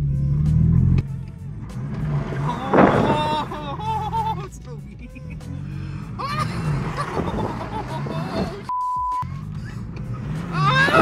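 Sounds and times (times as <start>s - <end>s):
car engine revving: 0.0s - 11.0s
censor bleep: 8.7s - 9.3s.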